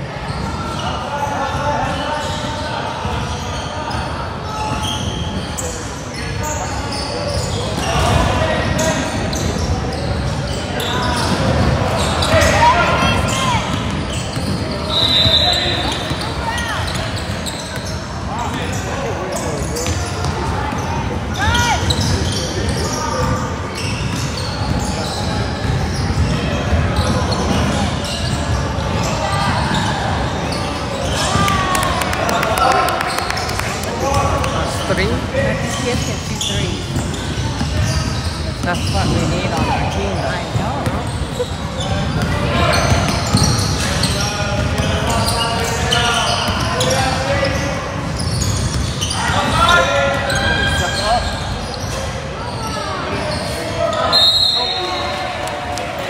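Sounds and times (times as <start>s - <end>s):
sneakers squeaking: 0.0s - 56.0s.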